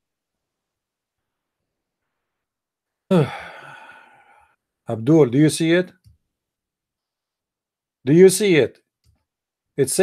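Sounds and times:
man sighing: 0:03.1 - 0:04.5
man speaking: 0:04.9 - 0:06.0, 0:08.0 - 0:08.8, 0:09.8 - 0:10.0.

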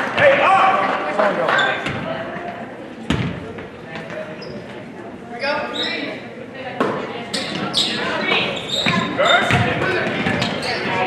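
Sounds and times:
basketball bouncing on hardwood floor: 0:03.1 - 0:03.4, 0:08.8 - 0:10.5.

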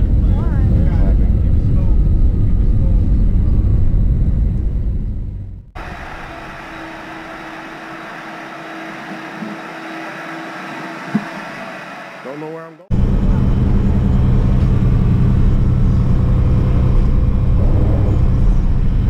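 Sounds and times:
airliner cabin rumble: 0:00.0 - 0:08.1, 0:12.9 - 0:19.0
steady low hum: 0:00.0 - 0:12.2, 0:12.9 - 0:19.0
terminal hall hiss: 0:05.8 - 0:12.7.

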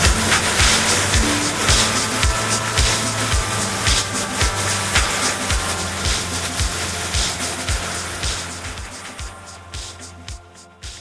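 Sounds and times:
electronic music with drum beat: 0:00.0 - 0:11.0
sustained bass line: 0:00.0 - 0:11.0.

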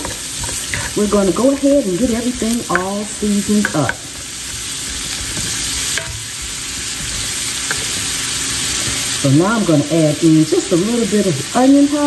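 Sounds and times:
wooden spatula scraping and tapping: 0:00.0 - 0:03.0, 0:03.6 - 0:08.0
potatoes sizzling in a skillet: 0:00.0 - 0:12.0.

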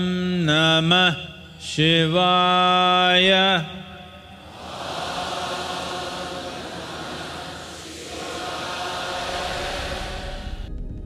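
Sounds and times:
large crowd chanting in unison: 0:04.4 - 0:10.7.

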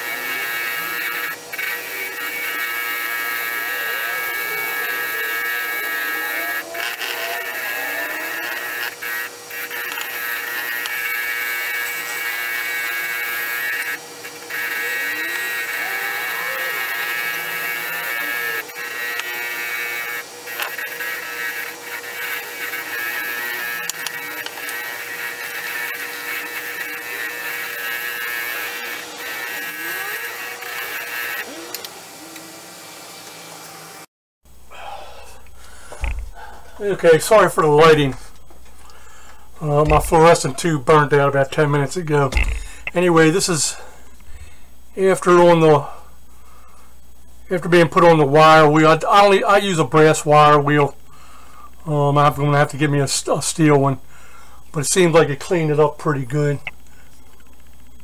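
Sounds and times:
bench motor humming: 0:00.0 - 0:34.1, 0:34.7 - 0:53.0.

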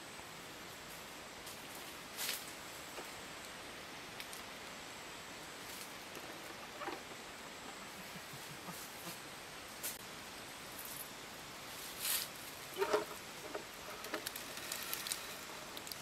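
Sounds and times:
outdoor hiss: 0:00.0 - 0:16.0.

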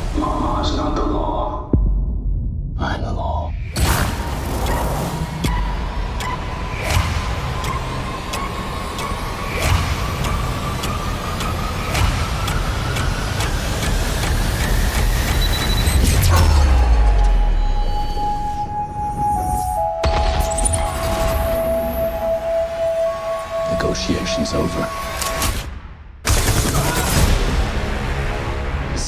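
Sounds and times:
dense low rumble: 0:00.0 - 0:03.8
heavy low boom: 0:01.5 - 0:04.4
rising whine: 0:16.7 - 0:25.7.

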